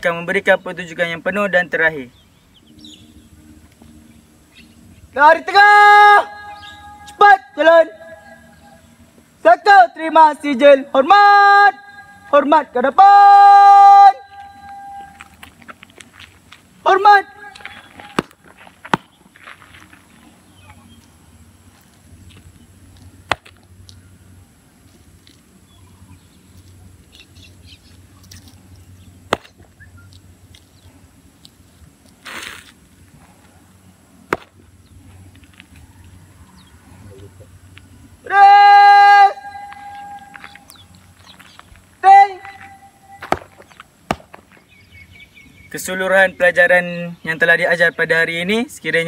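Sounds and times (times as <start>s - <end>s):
man shouting drill command: 5.2s - 8.2s, 9.4s - 15.0s, 16.8s - 17.7s, 38.2s - 40.4s, 42.0s - 42.8s
loud level-pitched call: 5.4s - 8.9s, 13.0s - 15.4s, 38.2s - 40.8s, 42.0s - 43.3s
footsteps marching on asphalt: 14.4s - 16.8s, 17.4s - 23.6s, 39.6s - 44.8s
shoe stamping on asphalt: 17.4s - 20.1s, 29.3s - 29.7s, 34.3s - 34.6s, 40.4s - 44.8s.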